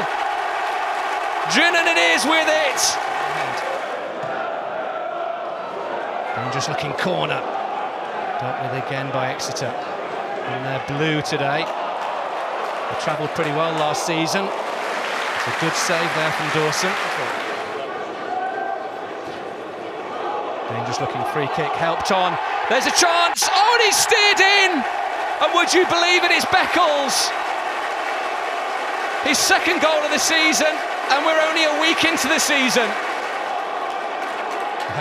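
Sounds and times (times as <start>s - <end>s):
murmur of stadium crowd: 0.0s - 35.0s.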